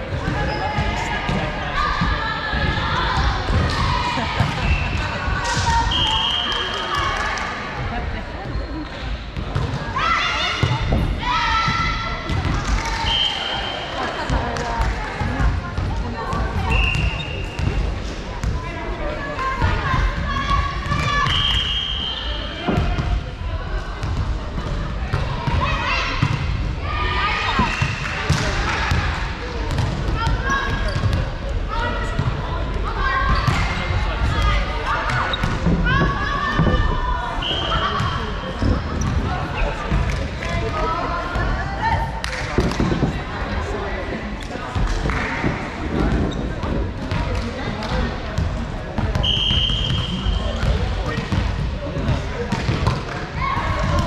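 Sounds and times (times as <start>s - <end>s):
volleyballs hit and bouncing: 0.0s - 7.6s, 9.3s - 13.2s, 13.9s - 18.8s, 22.5s - 23.3s, 24.0s - 37.1s, 37.7s - 43.4s, 44.1s - 54.0s.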